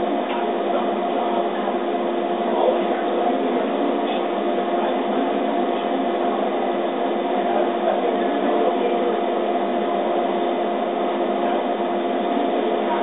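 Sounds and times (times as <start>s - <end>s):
laser cutter whirring: 0.0s - 13.0s.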